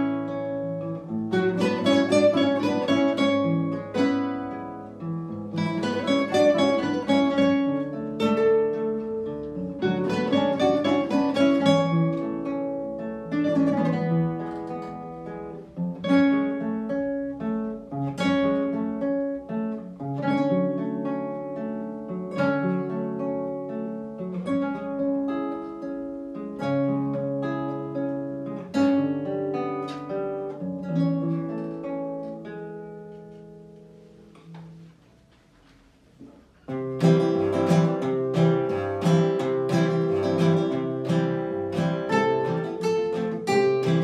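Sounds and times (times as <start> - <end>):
classical guitars playing together: 0.0 - 44.0.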